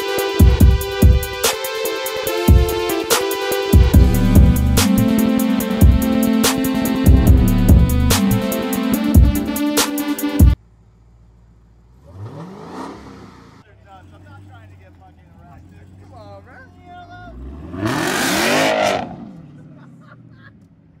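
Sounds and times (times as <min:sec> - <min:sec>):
car engine idling: 0:00.0 - 0:17.7
car engine revving: 0:00.0 - 0:20.7.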